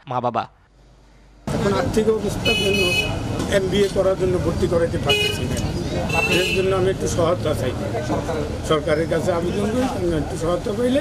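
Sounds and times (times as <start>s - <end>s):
street traffic: 0.6s - 11.0s
high-pitched vehicle horn toots: 2.4s - 3.3s, 5.1s - 6.8s.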